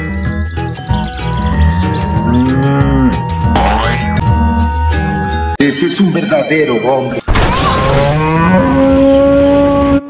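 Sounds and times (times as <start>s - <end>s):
background music: 0.0s - 10.0s
cow mooing: 1.4s - 3.3s, 8.0s - 10.0s.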